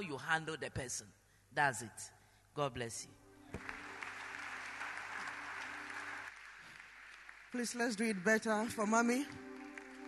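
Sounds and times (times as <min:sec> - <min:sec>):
congregation applauding: 0:03.5 - 0:10.0.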